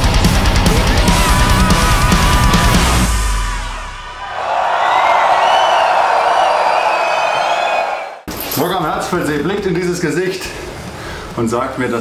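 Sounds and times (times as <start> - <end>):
crowd cheering: 0.4 - 8.3.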